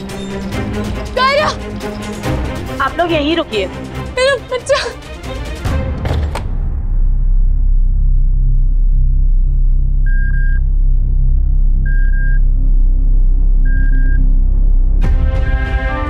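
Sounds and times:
deep steady drone: 6.6 - 16.0.

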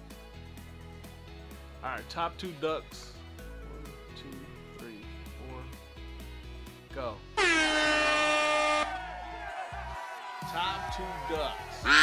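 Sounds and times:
background music: 0.0 - 12.0
air horn: 7.4 - 9.0.

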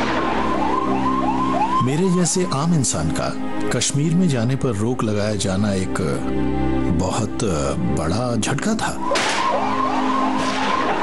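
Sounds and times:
siren yelping: 0.0 - 2.7, 9.0 - 11.0
steady music drone: 0.0 - 4.2, 8.8 - 11.0.

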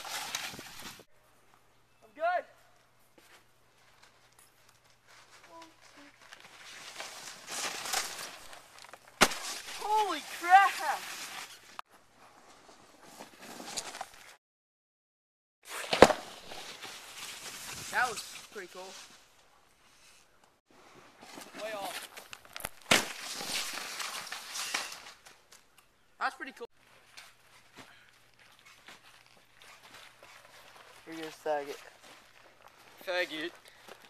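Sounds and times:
snow crunching underfoot: 4.8 - 14.4, 15.7 - 19.3
person speaking: 9.8 - 11.0.

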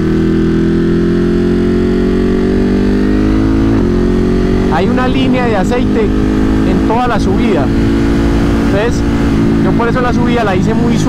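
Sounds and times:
motorcycle engine accelerating hard: 0.0 - 11.0.

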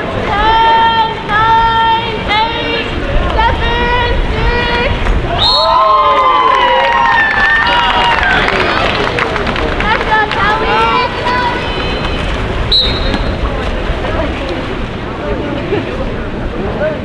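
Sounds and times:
general chatter: 0.0 - 17.0
crowd shouting: 0.3 - 9.2, 9.8 - 13.4
referee whistle blast: 5.4 - 5.8, 12.7 - 13.4.

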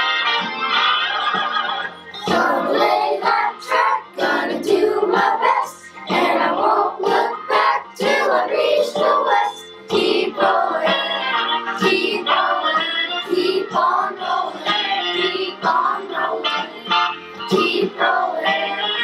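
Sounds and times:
instrumental backing track: 0.0 - 19.0
children's chorus singing: 2.2 - 19.0.

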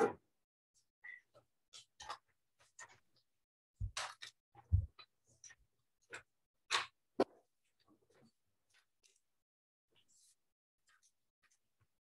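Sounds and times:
paper rustling and tapping: 3.8 - 9.2.

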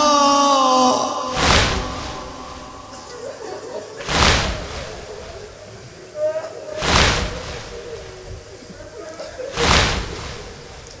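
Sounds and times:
crowd striking chests in unison: 1.3 - 6.0, 6.7 - 11.0.

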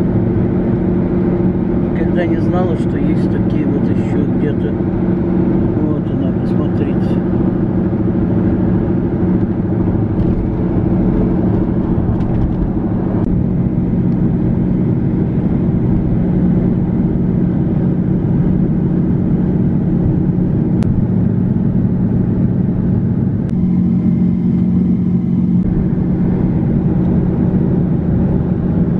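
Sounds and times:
car engine hum: 0.0 - 28.9
car road noise: 0.0 - 28.9.

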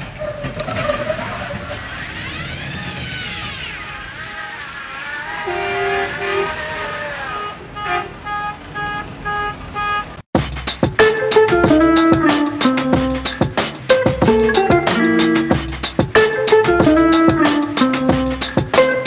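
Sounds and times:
vehicles running: 0.0 - 19.0.

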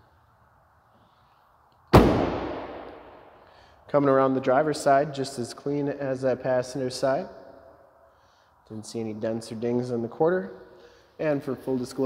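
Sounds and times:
long echo: 1.9 - 8.5.

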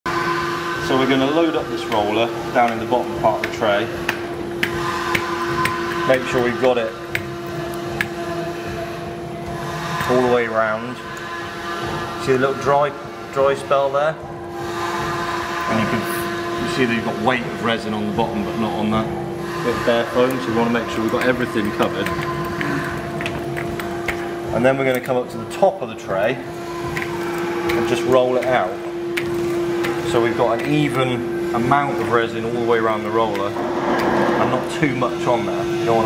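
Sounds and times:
steady hum: 0.1 - 36.0
higher tone: 33.4 - 35.8.

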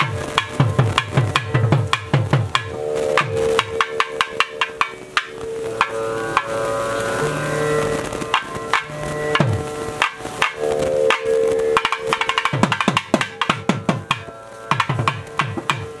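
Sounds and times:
barrel drums struck: 0.0 - 6.6, 8.3 - 16.0
steady held drone: 0.0 - 16.0.

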